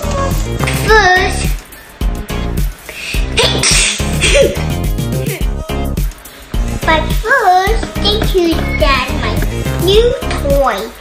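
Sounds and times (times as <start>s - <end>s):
background music with steady beat: 0.0s - 11.0s
child sneezing: 3.1s - 4.7s.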